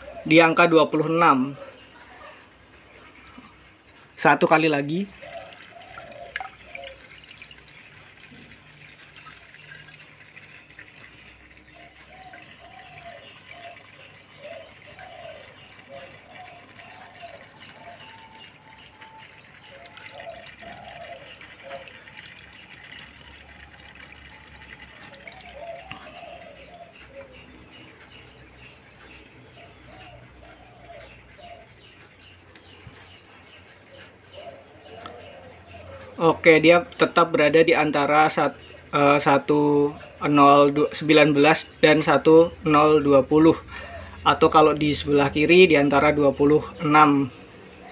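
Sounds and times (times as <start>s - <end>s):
water trickling and dripping: 3.3s - 33.3s.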